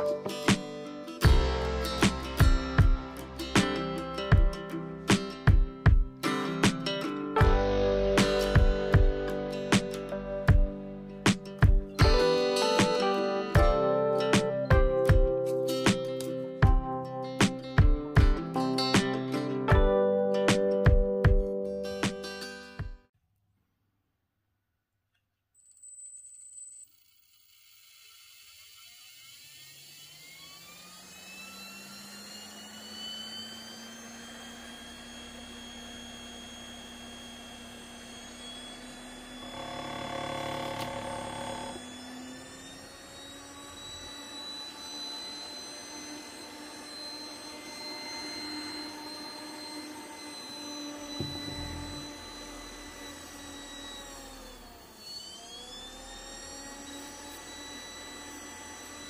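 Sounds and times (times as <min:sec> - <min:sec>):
fan motor whining: 0:27.2 - 0:59.0
whir of air: 0:51.1 - 0:54.5
knock: 0:51.2 - 0:52.2.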